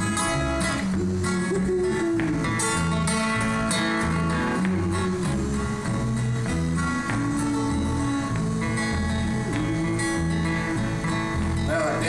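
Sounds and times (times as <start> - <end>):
acoustic guitar strumming: 0.0 - 12.0
bass guitar line: 0.0 - 12.0.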